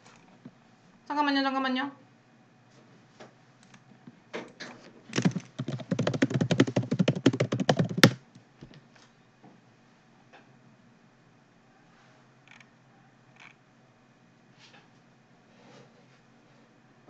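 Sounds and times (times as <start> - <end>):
computer keyboard typing: 5.2 - 8.2.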